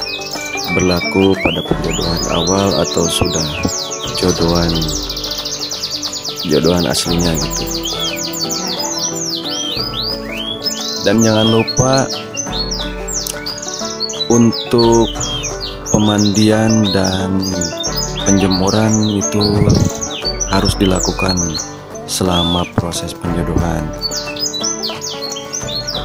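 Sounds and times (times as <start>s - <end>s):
canaries chirping and trilling: 0.0s - 26.0s
music of held notes: 0.0s - 26.0s.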